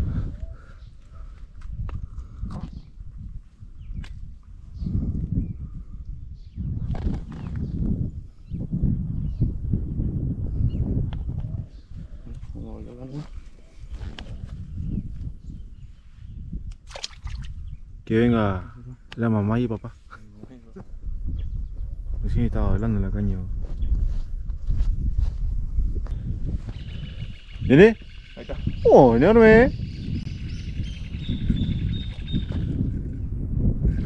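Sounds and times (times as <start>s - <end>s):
wind rumbling on microphone: 0.0s - 34.0s.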